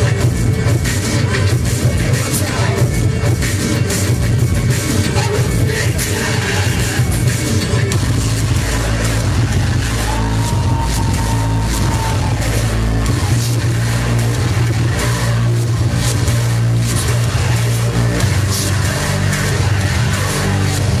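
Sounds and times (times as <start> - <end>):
distorted bass pulse: 0.0 - 21.0
industrial electronic music: 0.0 - 21.0.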